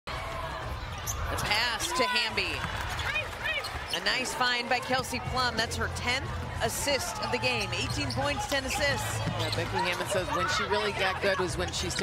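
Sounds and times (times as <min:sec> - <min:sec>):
arena crowd noise: 0:00.1 - 0:12.0.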